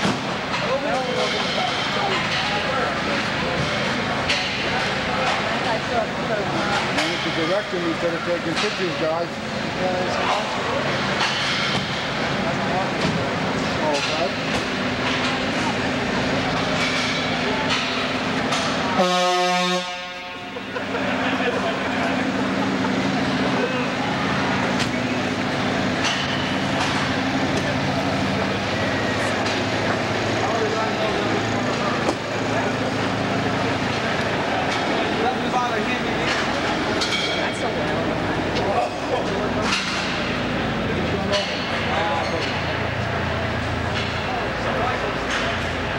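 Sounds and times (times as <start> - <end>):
diesel engine running: 0.0 - 45.9
murmur of voices: 0.0 - 45.9
air horn blast: 19.0 - 20.6.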